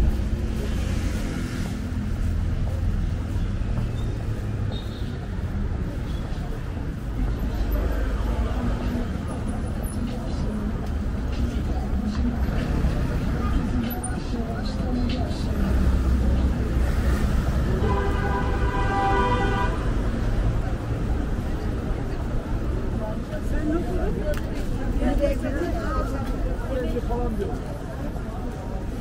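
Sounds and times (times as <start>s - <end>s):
road traffic: 0.0s - 29.0s
vehicle horn honk: 17.8s - 19.8s.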